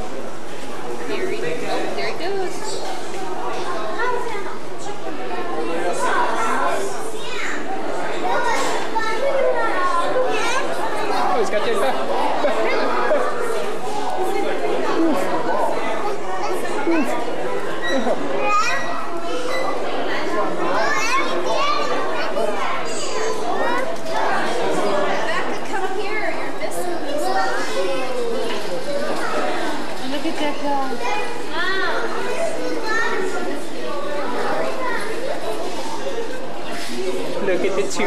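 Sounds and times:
young children chattering: 0.0s - 38.0s.

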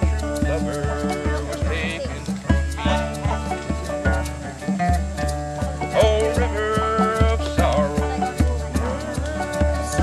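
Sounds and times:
low bass beat: 0.0s - 10.0s
string band playing: 0.0s - 10.0s.

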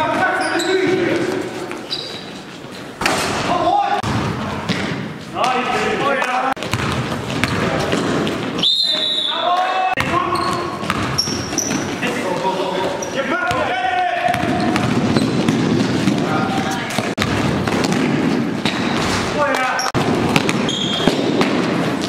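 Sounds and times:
players' voices: 0.0s - 21.8s
shoe squeaks: 0.2s - 2.9s, 8.6s - 9.4s, 10.2s - 12.1s, 12.7s - 13.3s, 14.6s - 15.5s, 20.6s - 21.2s
basketball bouncing on gym floor: 4.0s - 5.6s, 6.6s - 9.0s, 10.0s - 22.0s.

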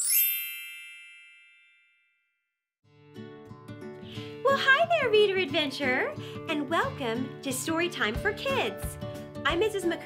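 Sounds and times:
bell-like chime: 0.0s - 2.5s
music: 2.8s - 10.0s.

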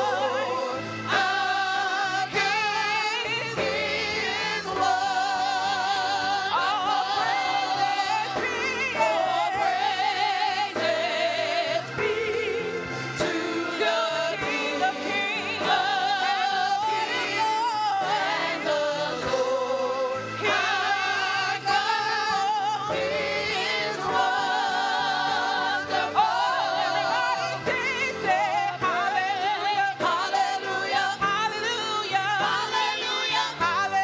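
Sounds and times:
instrumental accompaniment with bass: 0.0s - 34.0s
women singing together: 0.0s - 34.0s.

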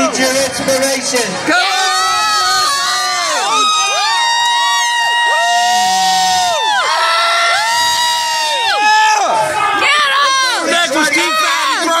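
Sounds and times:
spectators cheering: 1.4s - 12.0s
high-pitched screams: 1.6s - 11.9s.

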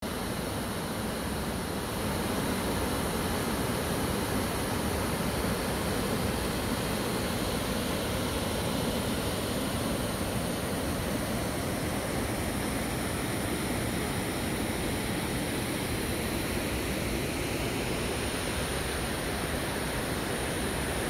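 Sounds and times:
waterfall roaring: 0.1s - 21.0s.

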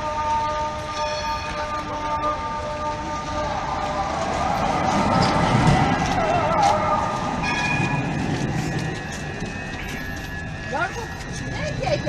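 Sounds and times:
tram high whine: 0.0s - 12.0s
tram low rumble: 0.0s - 12.0s.

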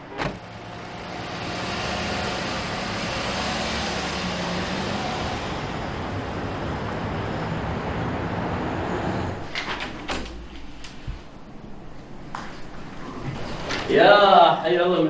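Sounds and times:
road traffic noise: 0.0s - 15.0s.

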